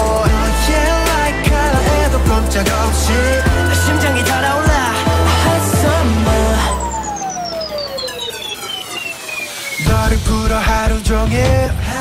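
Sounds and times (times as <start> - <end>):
synth tone gliding downward: 3.1 - 10.0.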